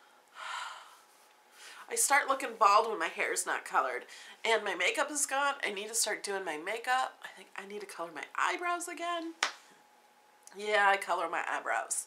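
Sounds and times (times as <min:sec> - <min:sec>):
woman exhaling breathily: 0:00.4 - 0:01.0
woman speaking: 0:01.9 - 0:09.4, 0:10.5 - 0:12.0.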